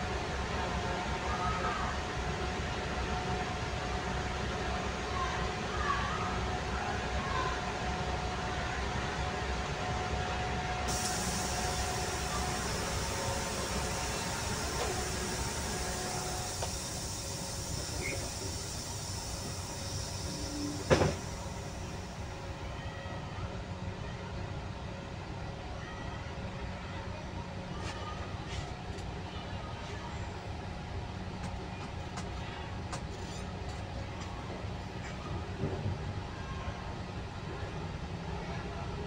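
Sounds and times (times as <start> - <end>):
low engine rumble: 0.0 - 25.4
hiss: 10.9 - 22.3.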